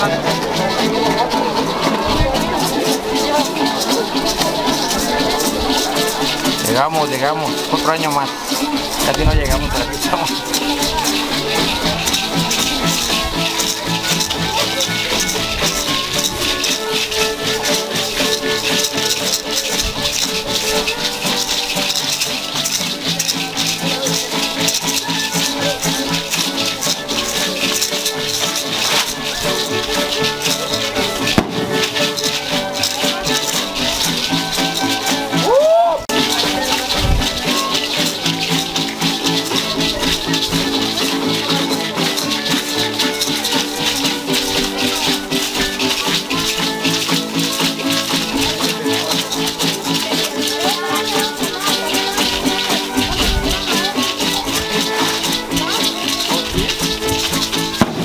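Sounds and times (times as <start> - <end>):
hand rattles shaking in rhythm: 0.0 - 58.0
ritual dance music: 0.0 - 58.0.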